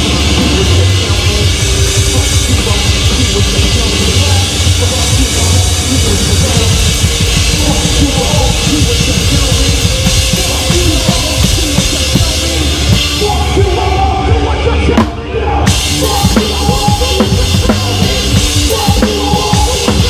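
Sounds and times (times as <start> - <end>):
drum kit played hard and fast: 0.0 - 20.0
live band performance: 0.0 - 20.0.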